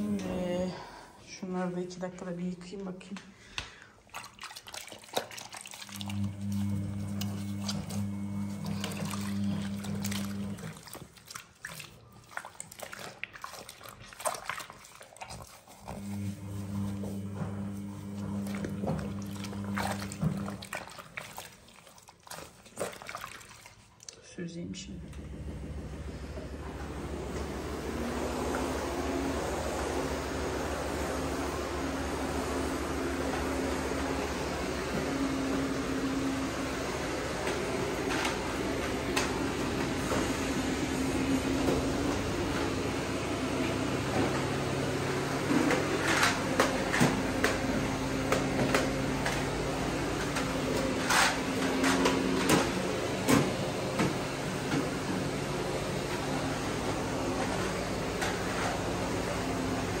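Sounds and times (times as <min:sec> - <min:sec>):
vacuum cleaner running: 0:00.0 - 0:04.0, 0:05.1 - 0:11.2, 0:15.3 - 0:21.6, 0:24.6 - 1:00.0.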